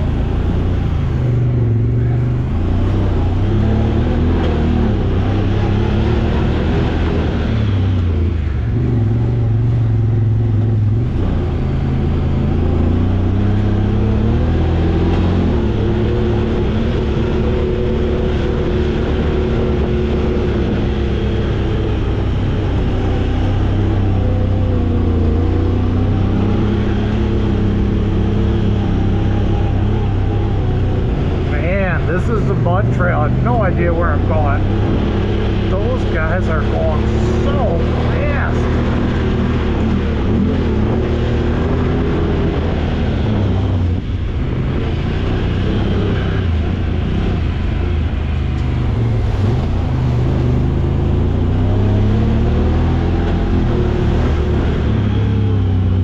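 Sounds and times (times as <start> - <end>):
engine running at low speed: 0.0 - 56.0
voice-like sound: 31.5 - 34.7, 35.7 - 39.0.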